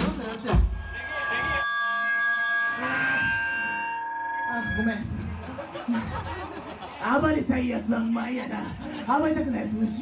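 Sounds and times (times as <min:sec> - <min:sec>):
amplifier feedback ringing: 0:00.7 - 0:05.2.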